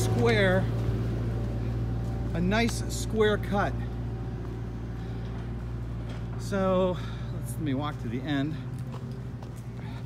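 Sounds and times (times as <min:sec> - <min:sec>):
excavator engine idling: 0:00.0 - 0:10.0.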